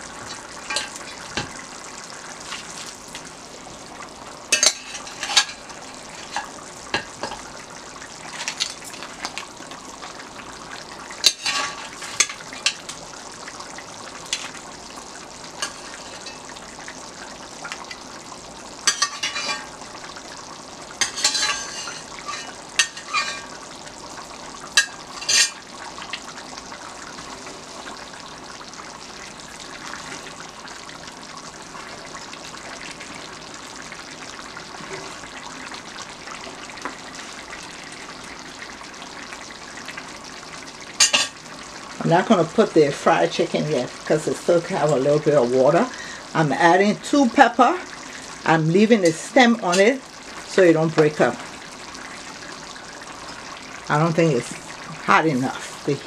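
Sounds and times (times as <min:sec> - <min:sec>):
sauce simmering and bubbling: 0:00.0 - 0:56.0.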